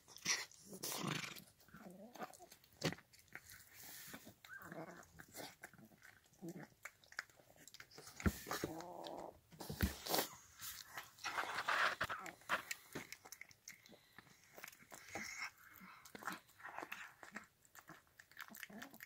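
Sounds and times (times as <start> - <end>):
cat eating wet food: 0.0 - 19.0.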